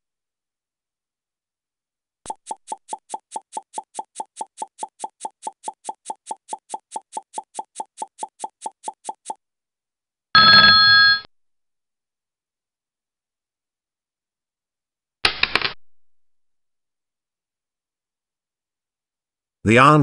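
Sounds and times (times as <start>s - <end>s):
quick even timer ticks: 2.3s - 9.4s.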